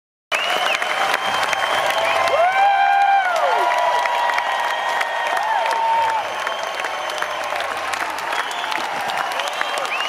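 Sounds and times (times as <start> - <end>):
audience clapping and cheering: 0.3 - 10.0.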